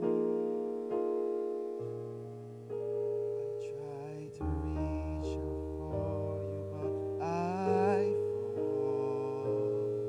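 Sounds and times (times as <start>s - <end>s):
soft piano-like keyboard chords: 0.0s - 10.0s.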